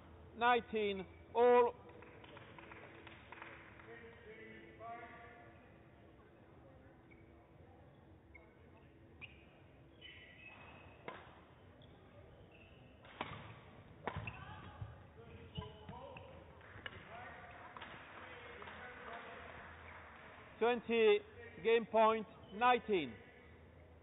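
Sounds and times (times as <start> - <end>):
badminton racket hitting shuttlecock: 13.0 - 14.5.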